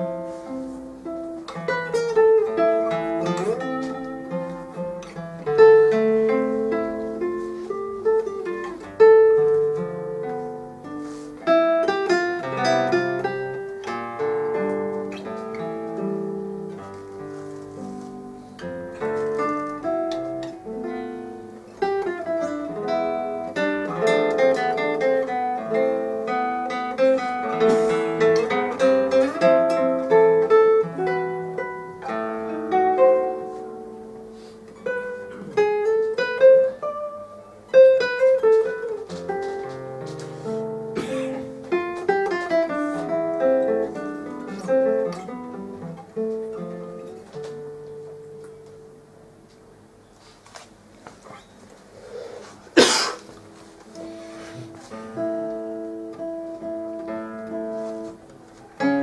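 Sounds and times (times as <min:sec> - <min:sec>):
fingerstyle classical guitar: 0:00.0 - 0:59.0.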